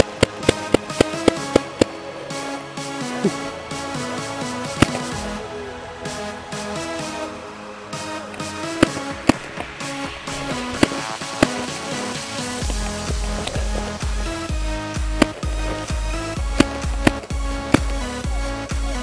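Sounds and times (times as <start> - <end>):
electronic dance music: 0.0 - 19.0
heavy bass beat: 0.0 - 19.0.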